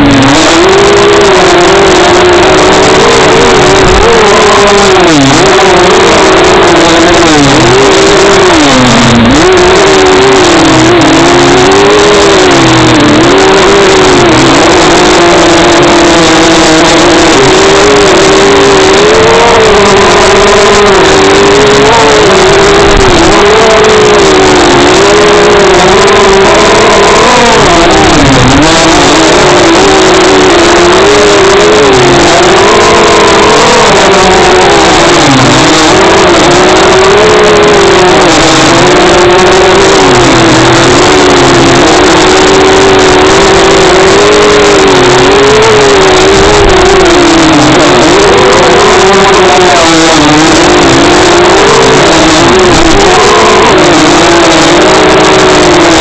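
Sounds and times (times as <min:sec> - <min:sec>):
high-revving rc car motor: 0:00.0 - 0:56.0
rushing noise over rough grass: 0:00.0 - 0:56.0.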